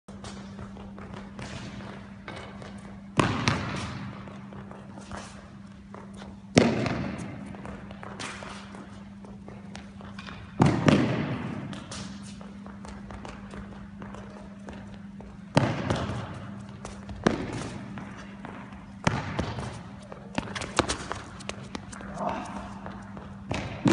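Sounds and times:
steady low hum: 0.1s - 23.9s
racket hitting tennis ball: 0.2s - 12.5s, 15.5s - 23.9s.

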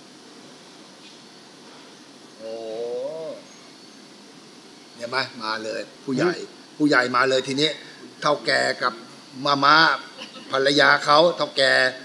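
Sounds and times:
faint room hiss: 0.0s - 12.0s
man exclaiming oh: 2.4s - 3.4s.

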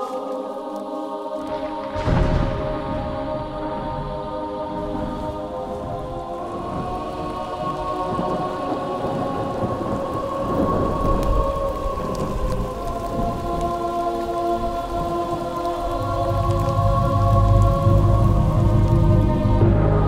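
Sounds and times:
music with long held chords: 0.0s - 20.0s
steady rain: 0.0s - 20.0s
thunder rumble: 1.5s - 20.0s.

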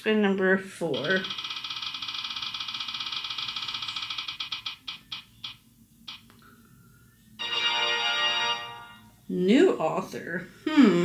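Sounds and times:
rapid ticks from phone speaker: 1.0s - 6.3s.

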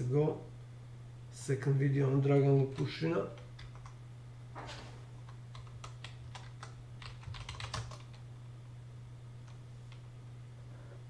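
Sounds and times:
computer keyboard typing: 2.7s - 4.0s, 5.2s - 8.2s.

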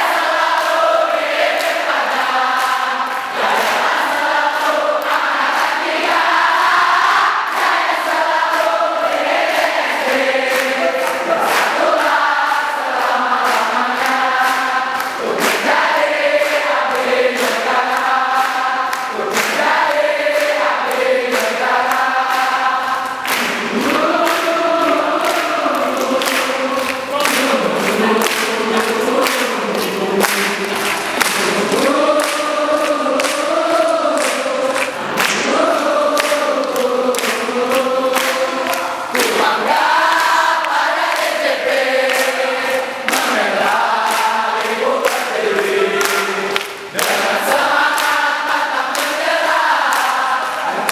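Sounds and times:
crowd singing in unison: 0.0s - 50.9s
hand claps: 0.0s - 50.9s.

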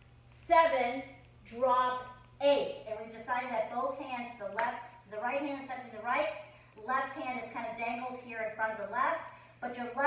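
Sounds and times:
faint steady hum: 0.0s - 10.0s
woman speaking: 0.3s - 10.0s.

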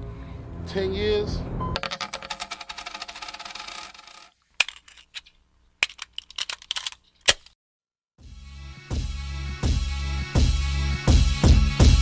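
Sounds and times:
small metal pieces clinking: 1.8s - 7.2s.

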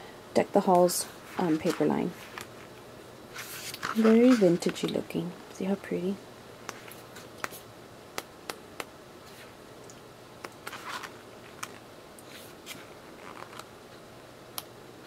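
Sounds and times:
paper pages rustling: 1.3s - 2.6s, 3.3s - 4.8s, 10.6s - 13.7s.

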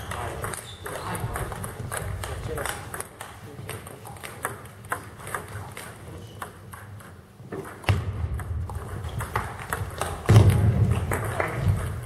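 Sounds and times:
table tennis balls clicking: 0.0s - 12.0s.

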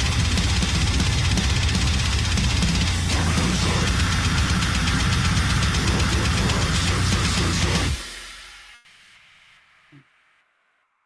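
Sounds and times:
rapid drumming: 0.0s - 8.1s
distorted guitars and bass: 0.0s - 8.8s.

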